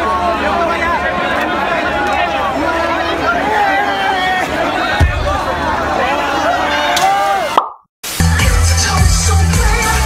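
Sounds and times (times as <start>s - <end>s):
crowd voices and shouting: 0.0s - 10.0s
music with heavy bass line: 8.0s - 10.0s.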